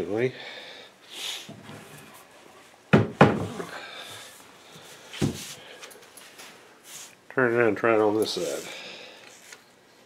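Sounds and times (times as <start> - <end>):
faint room noise: 0.0 - 10.0
dull wooden knock: 2.9 - 3.6.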